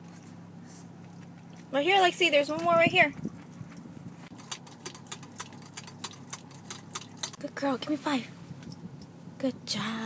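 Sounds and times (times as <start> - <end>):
low steady hum: 0.0 - 10.0
dog licking and drinking: 4.3 - 7.4.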